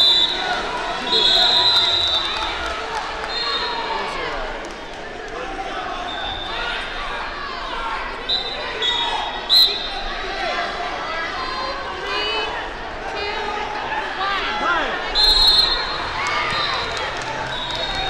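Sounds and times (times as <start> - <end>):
crowd chatter: 0.0 - 18.0
referee whistle blasts: 1.0 - 2.4, 8.3 - 9.9, 15.2 - 16.9.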